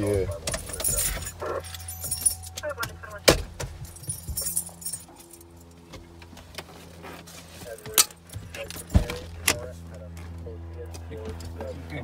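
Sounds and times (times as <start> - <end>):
vehicle low hum: 0.0 - 12.0.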